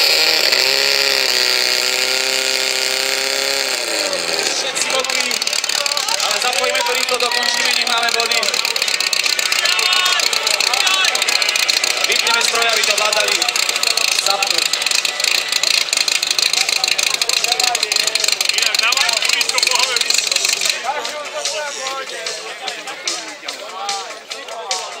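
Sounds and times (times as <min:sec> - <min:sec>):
voices: 0:03.7 - 0:25.0.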